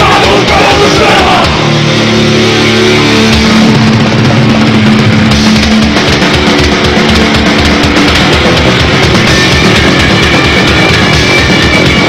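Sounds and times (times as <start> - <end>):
bass guitar: 0.0 - 12.0
distorted electric guitars: 0.0 - 12.0
driving drums: 0.0 - 12.0.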